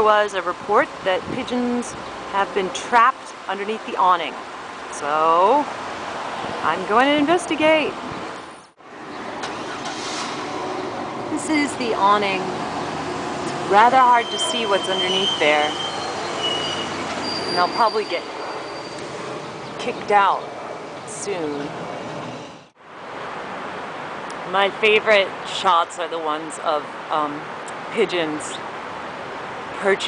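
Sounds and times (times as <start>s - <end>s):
passing vehicles hum: 0.0s - 30.0s.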